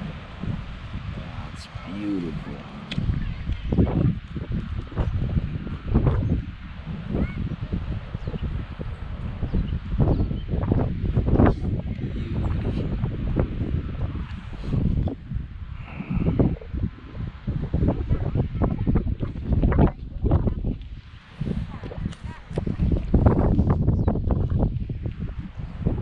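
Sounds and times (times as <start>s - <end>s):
wind rumbling on microphone: 0.0s - 26.0s.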